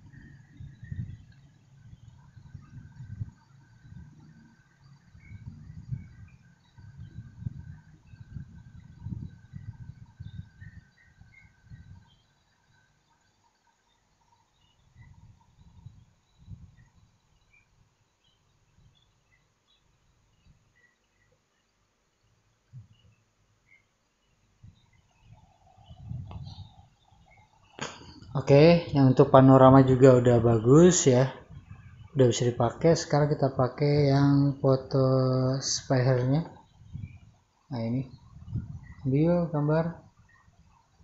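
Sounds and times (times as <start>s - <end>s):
low rumbling: 0.0s - 12.1s, 27.6s - 39.8s
faint bird chirps: 0.0s - 41.0s.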